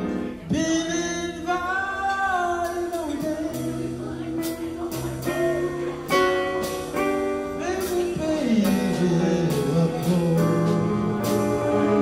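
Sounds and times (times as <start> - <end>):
keyboard: 0.0 - 12.0
man singing a long note: 7.6 - 11.1.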